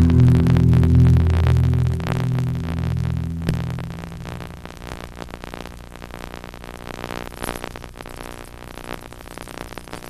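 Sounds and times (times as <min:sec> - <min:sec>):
amplified instruments humming: 0:00.0 - 0:05.9.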